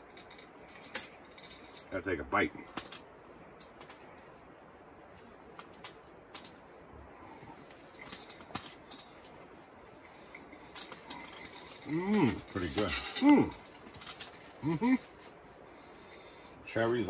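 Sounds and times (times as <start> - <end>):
small clicks and rustles: 0.0 - 2.0, 2.6 - 6.8, 7.4 - 15.4
people chewing: 10.0 - 15.2.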